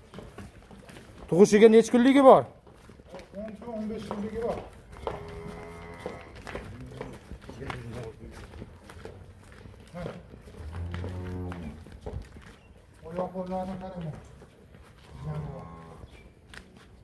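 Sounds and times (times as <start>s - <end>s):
hooves clicking on concrete: 0.0s - 17.0s
cattle mooing: 5.0s - 6.4s, 10.6s - 11.8s, 15.1s - 16.1s.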